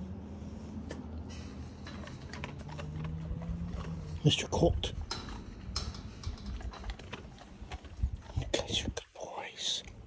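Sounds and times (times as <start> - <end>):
dogs crunching treats: 0.8 - 10.0.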